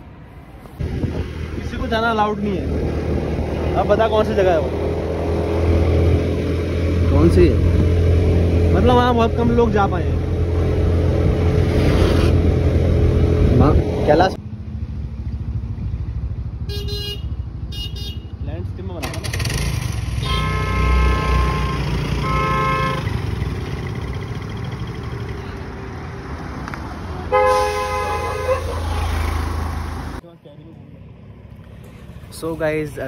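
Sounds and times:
motorbike engine and road rumble: 0.6s - 33.0s
vehicle horn honking: 16.7s - 18.4s, 20.1s - 23.3s, 27.2s - 29.2s
low-pitched horn: 20.2s - 23.2s, 27.3s - 29.2s.

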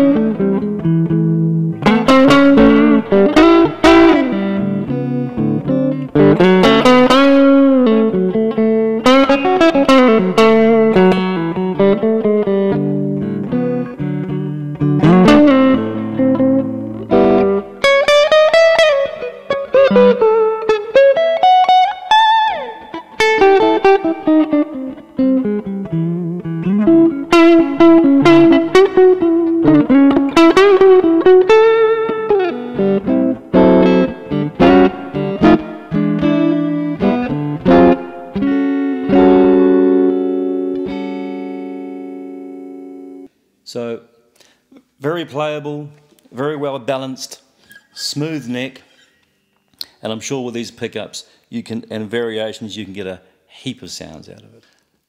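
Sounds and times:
solo electric guitar: 0.0s - 43.3s.

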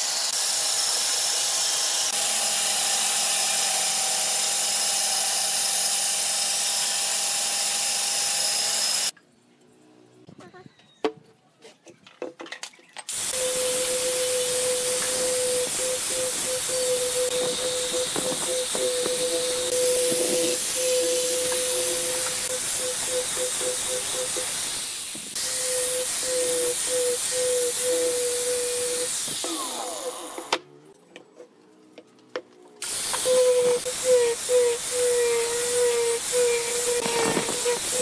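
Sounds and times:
angle grinder sanding wood: 13.1s - 30.4s, 32.8s - 38.0s.

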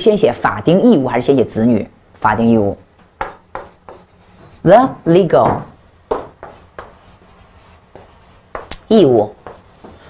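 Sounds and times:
chalk scratching on blackboard: 3.2s - 4.7s, 6.2s - 10.0s.

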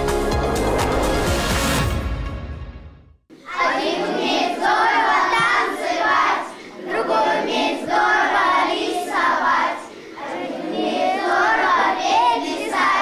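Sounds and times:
children singing in unison: 3.3s - 13.0s.

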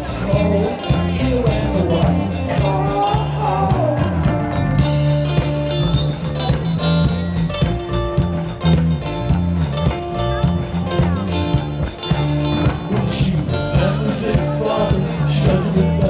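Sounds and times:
live band playing up-tempo song: 0.0s - 16.0s.

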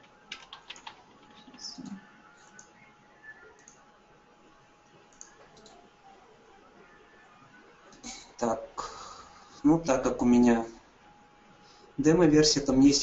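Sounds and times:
computer keyboard clicks: 0.3s - 2.7s, 3.6s - 3.8s, 5.1s - 5.8s.

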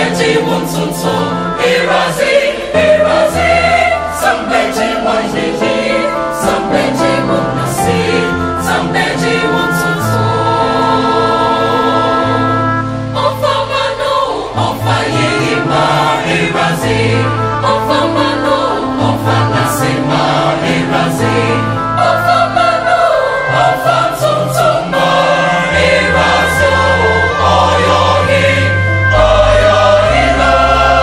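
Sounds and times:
mixed choir singing in harmony: 0.0s - 31.0s.

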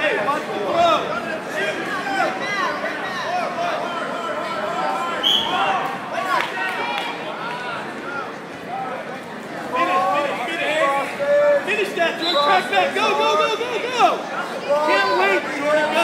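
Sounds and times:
spectators talking and calling out: 0.0s - 16.0s.

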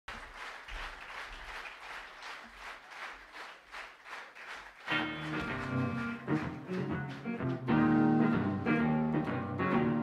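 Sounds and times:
audience applause: 0.1s - 8.4s.

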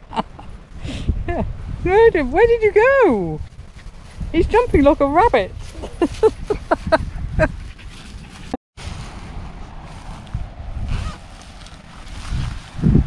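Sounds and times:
person laughing: 0.0s - 0.6s, 5.7s - 7.6s
wind buffeting microphone: 0.0s - 13.0s.

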